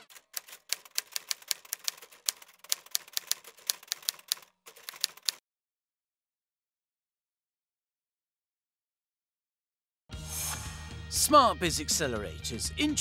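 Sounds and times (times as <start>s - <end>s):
typewriter key clacks: 0.0s - 5.4s.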